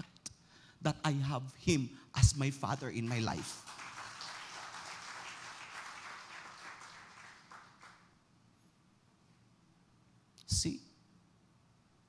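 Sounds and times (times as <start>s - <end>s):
faint applause: 3.5s - 8.1s.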